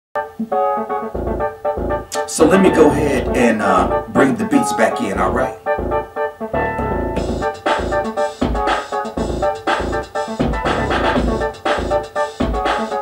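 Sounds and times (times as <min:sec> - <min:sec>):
synthesizer chords: 0:00.2 - 0:13.0
drum machine bass drum pulse: 0:01.2 - 0:04.1, 0:05.8 - 0:12.9.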